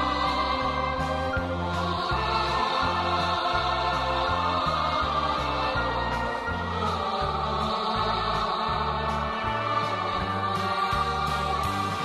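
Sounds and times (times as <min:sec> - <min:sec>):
bass line: 0:00.0 - 0:12.0
choir singing sustained notes: 0:00.0 - 0:12.0.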